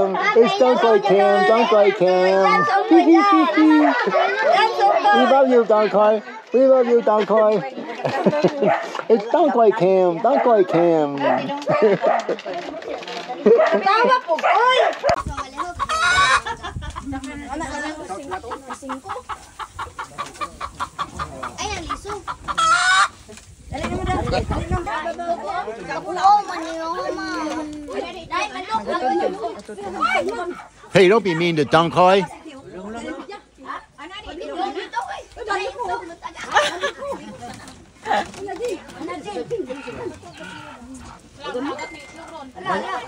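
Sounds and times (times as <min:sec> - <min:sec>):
hen clucking: 0:15.1 - 0:25.1, 0:30.5 - 0:32.2, 0:39.0 - 0:42.9.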